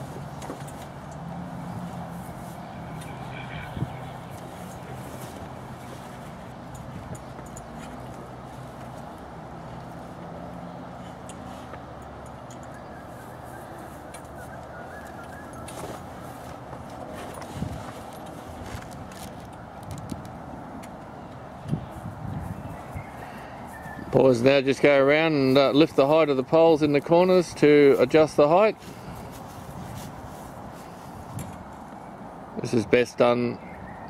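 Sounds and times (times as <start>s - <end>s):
outdoor background noise: 0.0s - 34.0s.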